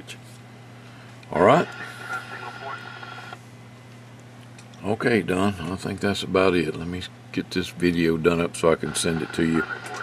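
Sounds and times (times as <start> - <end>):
low electrical hum: 0.0 - 10.0
faint garbled radio voice: 1.3 - 3.4, 8.7 - 10.0.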